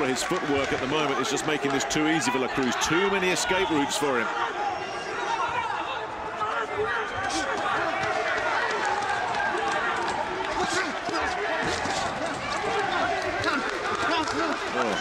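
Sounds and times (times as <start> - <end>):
voices shouting over one another: 1.1 - 15.0.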